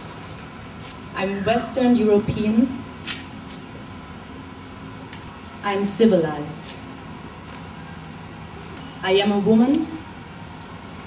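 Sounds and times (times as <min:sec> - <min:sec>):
distant road traffic hum: 0:00.0 - 0:11.0.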